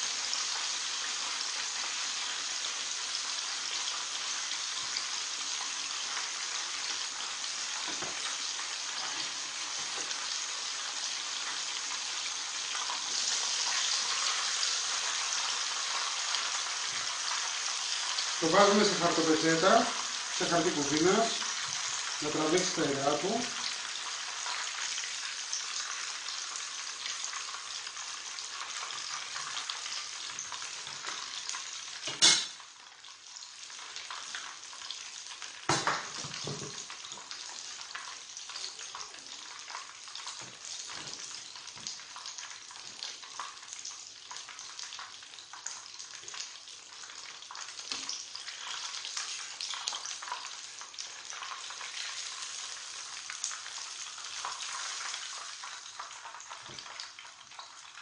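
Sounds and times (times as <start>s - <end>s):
meat frying in oil: 0.0s - 58.0s.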